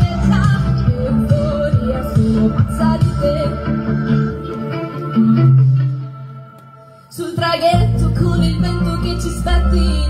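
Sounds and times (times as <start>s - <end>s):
instrumental pop music: 0.0s - 10.0s.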